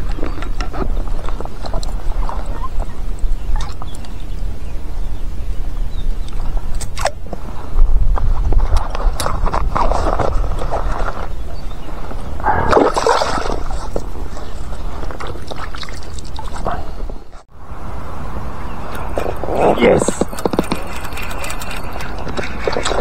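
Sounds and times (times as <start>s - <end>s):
wind rumbling on microphone: 0.0s - 23.0s
water splashing and sloshing: 11.9s - 17.6s.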